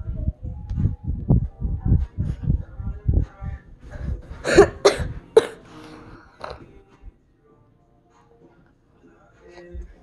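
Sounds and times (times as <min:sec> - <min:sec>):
soft low thuds: 0:00.0 - 0:05.4
child coughing: 0:04.4 - 0:05.6.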